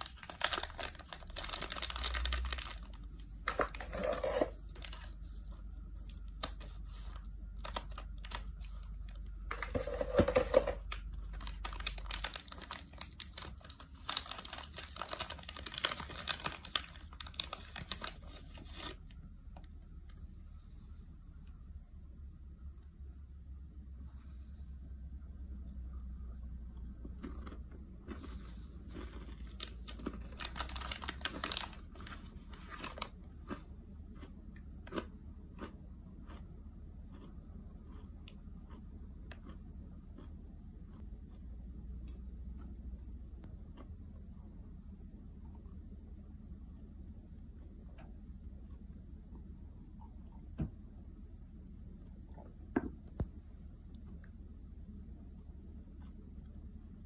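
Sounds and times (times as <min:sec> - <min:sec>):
plastic bag crinkling: 0:00.0 - 0:05.3, 0:06.0 - 0:19.0, 0:28.9 - 0:33.2.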